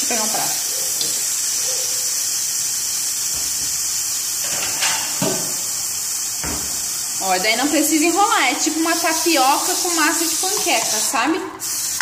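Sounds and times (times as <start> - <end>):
pancake sizzling in a pan: 0.0 - 12.0.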